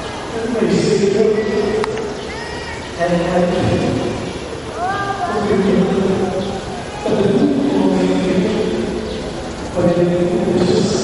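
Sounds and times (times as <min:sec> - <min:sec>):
person's drawn-out voice: 0:04.8 - 0:08.0.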